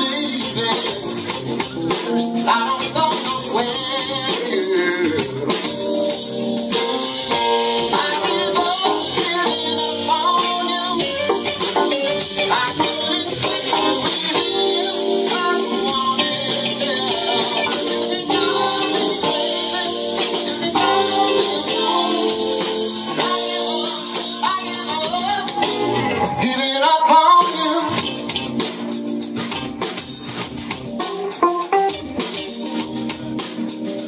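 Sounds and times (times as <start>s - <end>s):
drum kit with cymbals: 0.0s - 34.0s
electric guitar: 0.0s - 34.0s
keyboard: 0.0s - 34.0s
live band playing: 0.0s - 34.0s.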